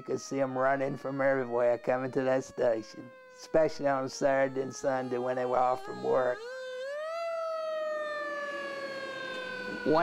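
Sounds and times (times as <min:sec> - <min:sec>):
fire alarm siren wail: 0:00.0 - 0:10.0.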